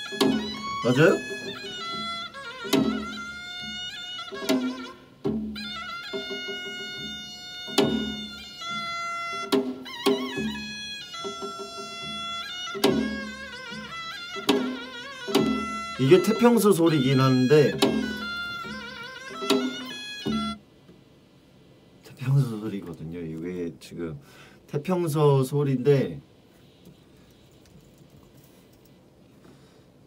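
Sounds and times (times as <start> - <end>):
struck drum beat: 0.0 - 20.6
double-reed shawm held notes: 0.0 - 28.9.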